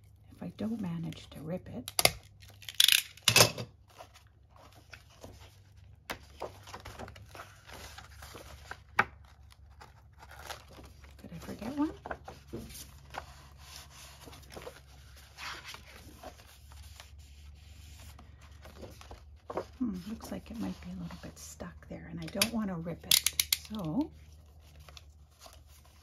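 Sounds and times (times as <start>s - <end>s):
book pages turning: 3.8s - 22.8s, 23.7s - 26.0s.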